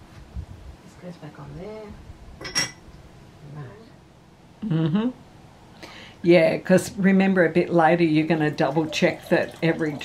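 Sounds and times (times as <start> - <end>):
china lid clinking on teapot: 2.4 - 2.8.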